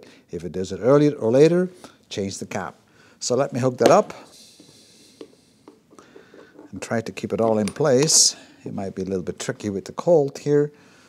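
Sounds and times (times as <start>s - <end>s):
room hiss: 0.0s - 11.0s
hose fitting clicks: 7.4s - 8.3s.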